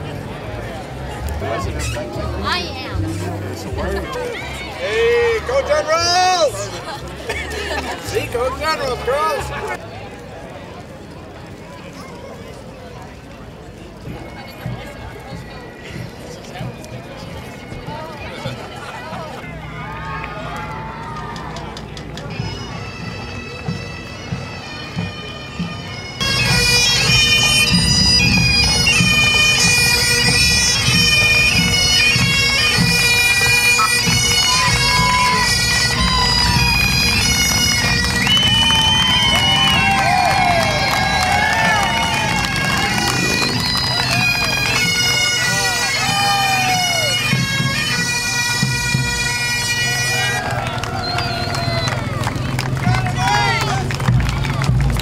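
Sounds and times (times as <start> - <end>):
street noise: 0.0 - 55.0
bagpipes playing a tune: 22.3 - 51.9
voices calling out: 26.0 - 47.8, 49.4 - 55.0.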